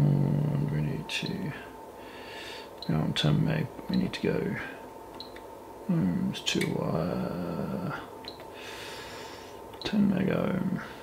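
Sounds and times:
person breathing softly: 2.0 - 2.8, 8.5 - 9.6
person speaking: 5.8 - 8.1, 9.8 - 11.0.

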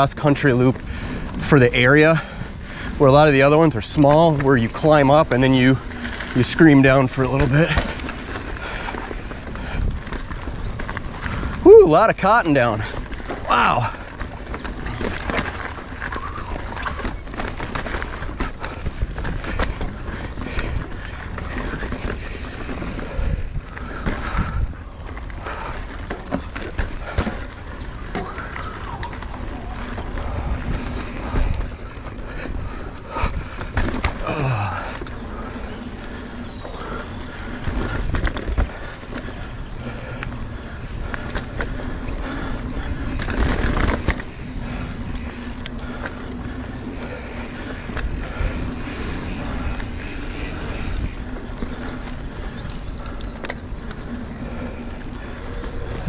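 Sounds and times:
bike knocking and rattling: 0.0 - 56.0
bike tyres rolling over dirt: 0.0 - 56.0.

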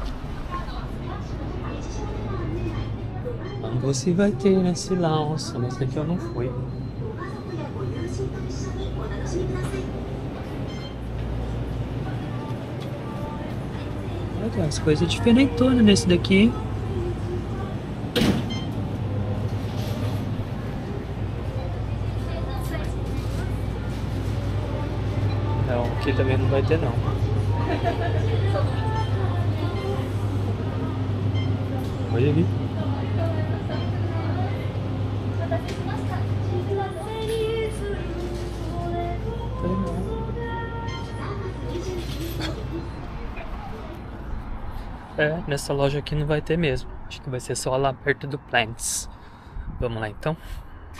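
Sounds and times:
refrigerated display case hum: 0.0 - 50.9.

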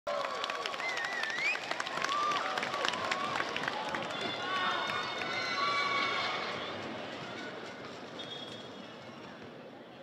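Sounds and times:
arena crowd noise: 0.1 - 10.0.

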